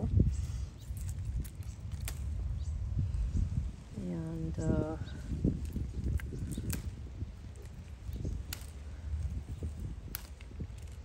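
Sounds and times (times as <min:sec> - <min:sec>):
hands rustling among plants: 0:00.0 - 0:11.0
low microphone rumble: 0:00.0 - 0:11.0
seedling pulled from pebbly soil: 0:00.0 - 0:11.0.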